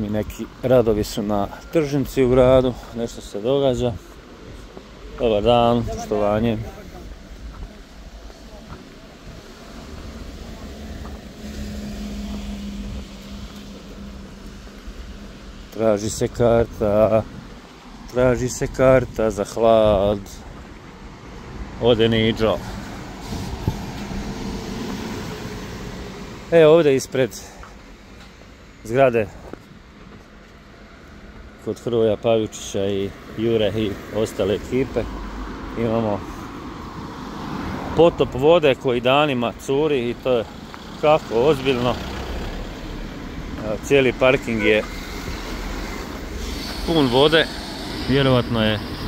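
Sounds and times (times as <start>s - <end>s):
tyre noise on asphalt: 0.0s - 49.0s
bus engine driving past: 4.8s - 16.1s, 21.1s - 28.2s, 33.2s - 49.0s.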